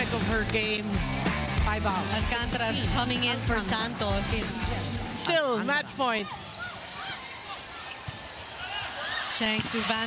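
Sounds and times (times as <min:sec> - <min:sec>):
arena crowd noise: 0:00.0 - 0:10.0
shoes squeaking on court: 0:06.3 - 0:08.8.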